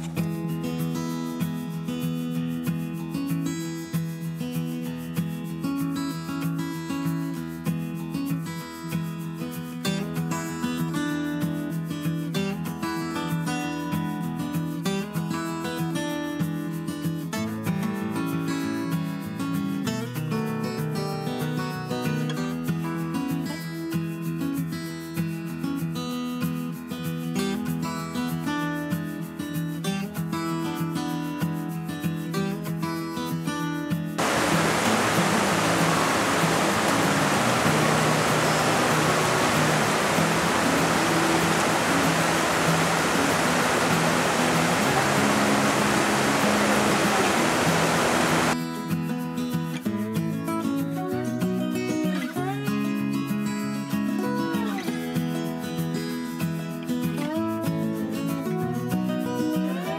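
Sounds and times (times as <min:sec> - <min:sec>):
strummed acoustic guitar: 0:00.0 - 0:59.9
creek rushing over boulders: 0:34.2 - 0:48.6.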